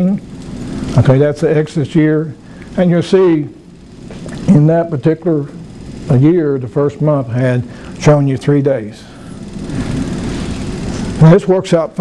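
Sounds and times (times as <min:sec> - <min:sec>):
steady rushing noise: 0:09.1 - 0:12.0.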